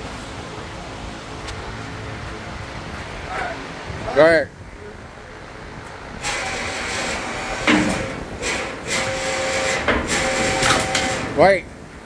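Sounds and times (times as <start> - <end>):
hydraulic pump motor humming: 6.2 - 11.4
sharp metal knocks: 7.5 - 11.4.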